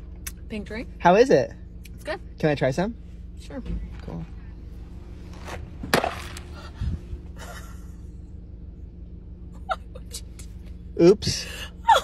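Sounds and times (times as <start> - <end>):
car interior hum: 0.0 - 12.0.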